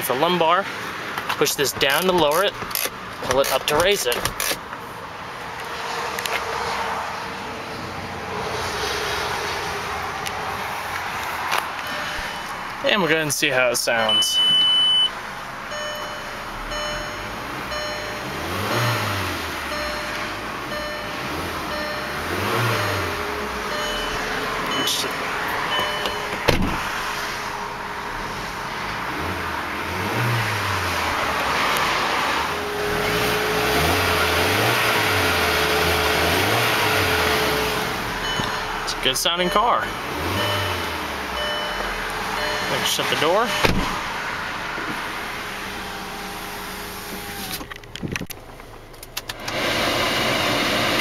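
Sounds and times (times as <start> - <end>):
car engine revving: 5.8 - 14.2, 15.2 - 47.7, 49.3 - 51.0.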